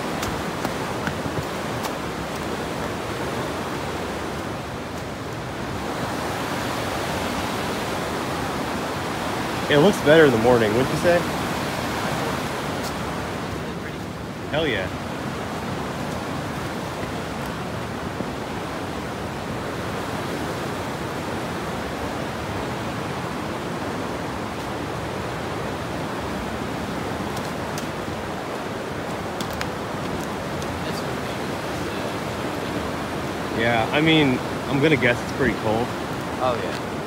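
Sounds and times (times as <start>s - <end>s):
river water rushing over rocks: 0.0s - 37.0s.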